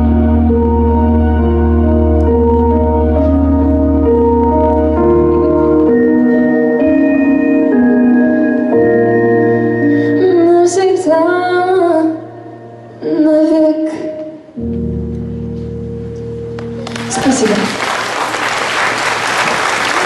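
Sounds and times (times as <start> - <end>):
organ-like keyboard chords: 0.0 - 13.5, 14.1 - 17.1
girl singing: 10.1 - 12.4, 13.0 - 14.5.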